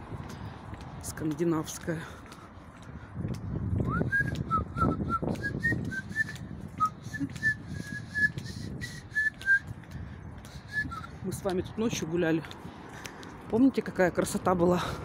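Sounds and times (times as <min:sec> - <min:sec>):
person whistling a tune: 0:03.8 - 0:09.8, 0:10.5 - 0:11.2.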